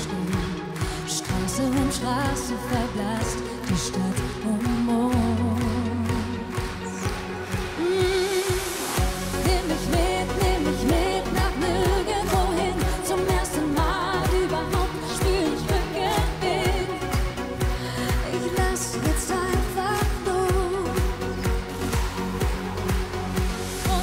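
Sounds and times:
woman singing pop song: 0.0 - 24.0.

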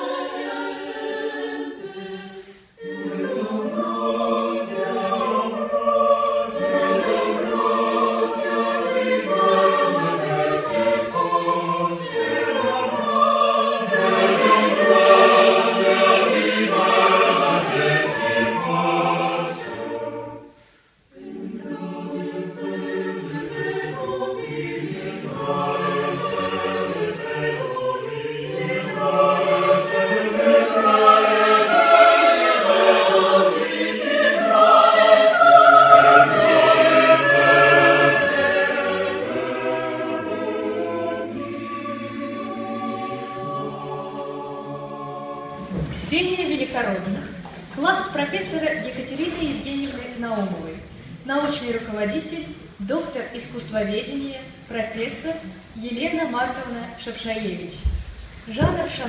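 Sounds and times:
mixed choir singing a cappella: 0.0 - 47.4.

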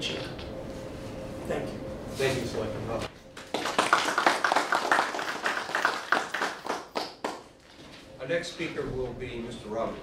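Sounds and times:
audience clapping: 3.4 - 7.5.

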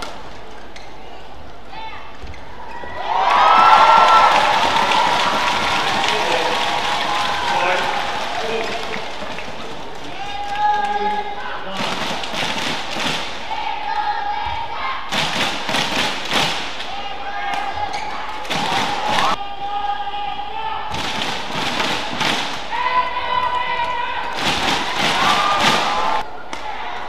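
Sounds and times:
shoes squeaking on court: 0.0 - 1.2, 17.8 - 18.4
arena crowd noise: 0.0 - 27.0.

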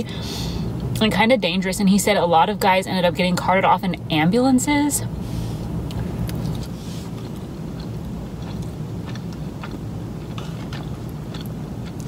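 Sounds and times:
steady low hum: 0.0 - 12.0
close-miked chewing: 5.8 - 12.0.

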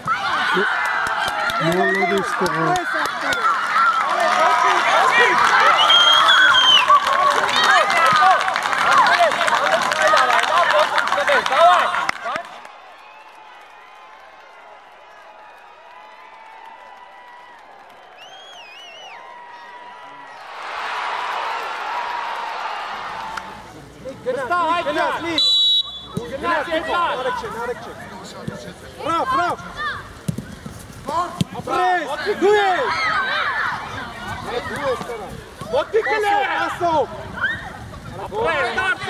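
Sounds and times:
people shouting outdoors: 0.0 - 12.4, 24.3 - 28.0, 28.9 - 30.2, 31.1 - 39.0.

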